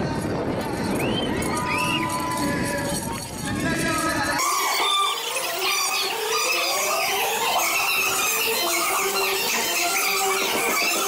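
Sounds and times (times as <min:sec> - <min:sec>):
children screaming and squealing: 0:00.8 - 0:11.0.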